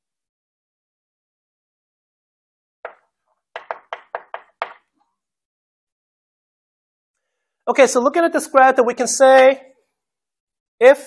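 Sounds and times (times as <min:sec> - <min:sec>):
chalk tapping on blackboard: 0:02.9 - 0:04.9.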